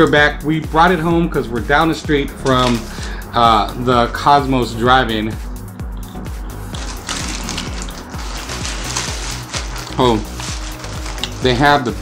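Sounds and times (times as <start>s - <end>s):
background music with beat and bass: 0.0s - 12.0s
paper wrapping crinkling: 2.3s - 3.2s, 6.6s - 12.0s.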